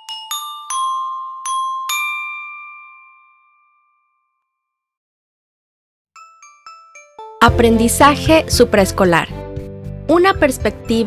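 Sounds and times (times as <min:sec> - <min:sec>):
bell-like chime ringing: 0:00.0 - 0:04.9, 0:06.2 - 0:07.8.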